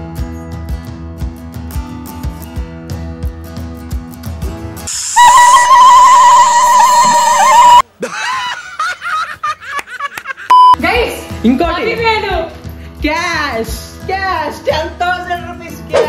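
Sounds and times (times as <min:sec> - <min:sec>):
loud wavering high-pitched tone: 0:05.0 - 0:07.8
short beep: 0:10.5 - 0:10.8
soft background music: 0:10.8 - 0:16.0.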